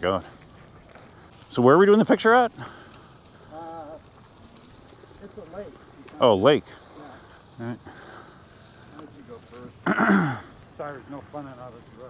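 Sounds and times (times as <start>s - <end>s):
man clearing his throat: 9.8s - 10.5s.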